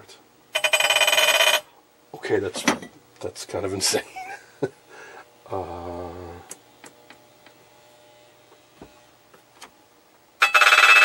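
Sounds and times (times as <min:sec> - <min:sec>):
massager rattling buzz against glass: 0:00.5 - 0:01.7.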